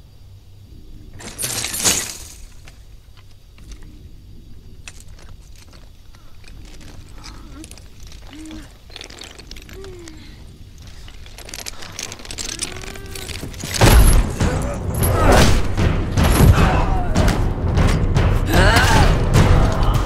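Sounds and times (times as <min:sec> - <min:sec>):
metal chain clinking: 0:01.2 - 0:03.8, 0:04.7 - 0:15.2
person grunting: 0:18.5 - 0:20.0.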